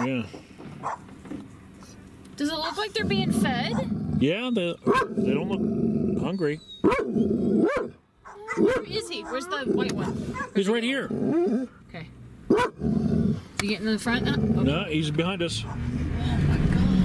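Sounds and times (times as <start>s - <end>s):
dogs barking and growling: 0.8s - 1.2s, 2.5s - 11.8s, 12.5s - 13.5s, 15.6s - 16.2s
vehicle engine running: 13.5s - 17.0s.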